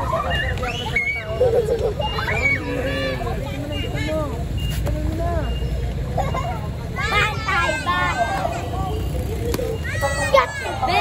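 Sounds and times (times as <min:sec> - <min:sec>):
people talking and calling out: 0:00.0 - 0:11.0
street traffic rumble: 0:00.0 - 0:11.0.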